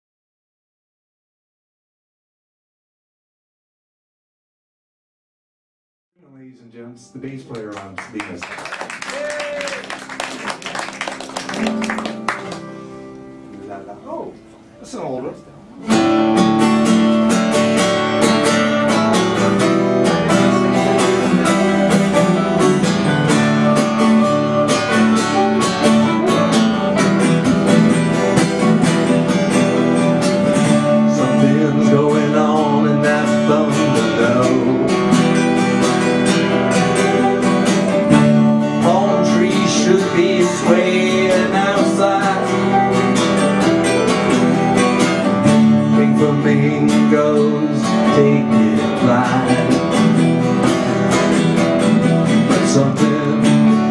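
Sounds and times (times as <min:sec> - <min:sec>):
acoustic guitars strumming: 0:06.4 - 0:53.9
melody over guitars: 0:08.9 - 0:53.9.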